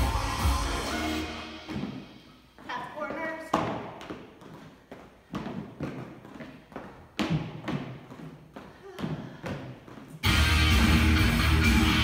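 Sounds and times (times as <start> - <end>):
loud music: 0.0 - 2.2, 10.2 - 12.0.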